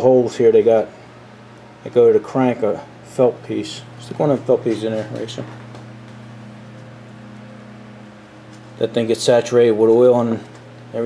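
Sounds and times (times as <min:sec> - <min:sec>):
low hum with faint hiss: 0:00.0 - 0:11.0.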